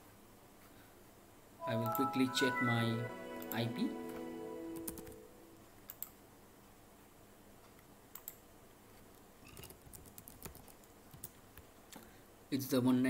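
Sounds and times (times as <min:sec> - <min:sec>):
computer keyboard typing: 0:04.8 - 0:05.2, 0:09.5 - 0:11.4.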